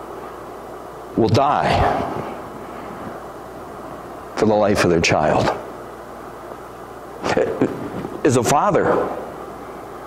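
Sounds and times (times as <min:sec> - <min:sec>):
large room background noise: 0:00.0 - 0:10.0
echo of spoken word: 0:01.2 - 0:02.1.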